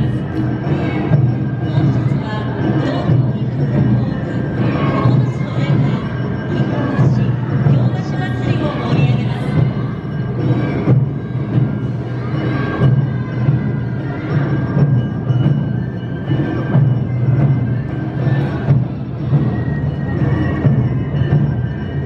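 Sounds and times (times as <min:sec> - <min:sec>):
drums keeping a steady beat: 0:00.0 - 0:22.0
higher pitched instruments: 0:00.0 - 0:22.0
voices: 0:00.0 - 0:22.0.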